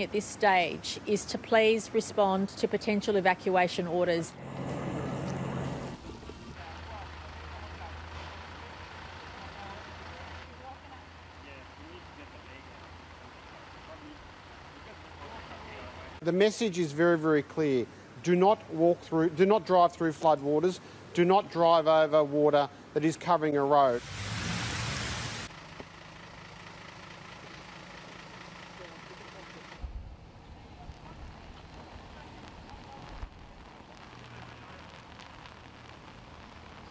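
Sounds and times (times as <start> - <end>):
distant voices: 3.8 - 16.1
heavy rain hissing: 4.3 - 6.6, 23.8 - 25.5, 30.8 - 36.9.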